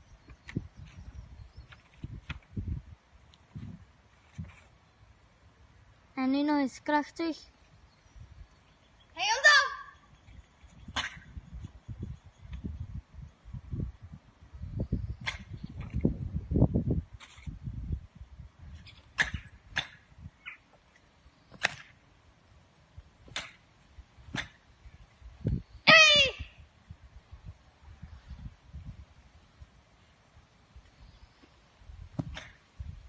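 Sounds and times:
girl shouting kiai: 9.2s - 10.0s, 25.9s - 26.5s.

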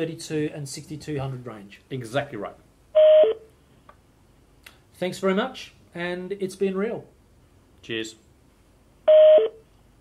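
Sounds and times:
falling two-note phone beep: 9.1s - 9.6s.

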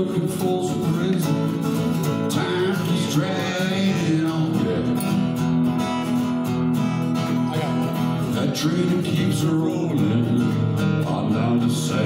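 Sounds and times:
acoustic guitar strumming: 0.0s - 12.0s.

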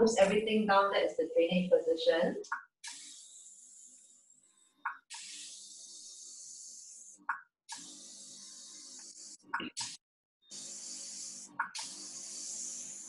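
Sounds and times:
airbrush hissing: 2.8s - 13.0s.

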